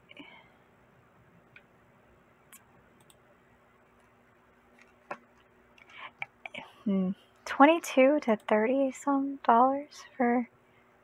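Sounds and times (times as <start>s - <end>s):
faint steady hum: 0.0s - 11.0s
woman speaking: 6.5s - 10.5s.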